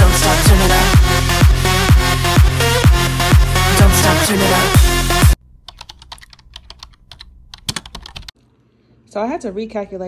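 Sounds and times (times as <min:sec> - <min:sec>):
electronic dance music: 0:00.0 - 0:05.4.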